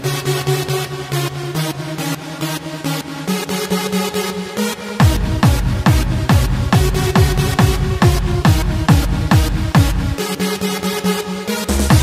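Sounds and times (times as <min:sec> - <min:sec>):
electronic dance music: 0:00.0 - 0:12.0
heavy kick drum: 0:05.0 - 0:10.2, 0:11.8 - 0:12.0.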